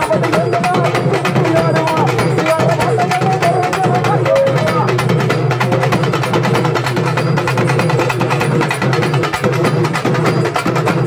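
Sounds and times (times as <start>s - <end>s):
drum ensemble playing fast rhythm: 0.0s - 11.0s.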